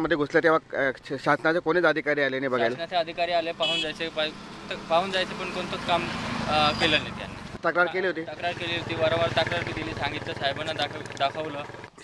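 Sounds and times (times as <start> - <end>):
man talking: 0.0 - 11.7.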